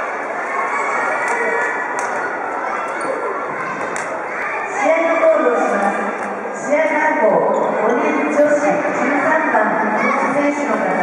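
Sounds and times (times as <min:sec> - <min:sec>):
voices echoing in a hall: 0:00.0 - 0:11.0.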